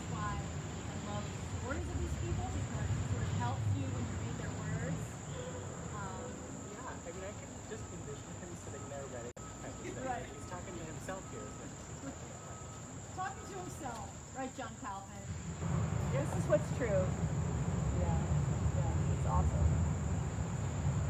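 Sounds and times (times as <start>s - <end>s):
insects buzzing: 0.0s - 21.0s.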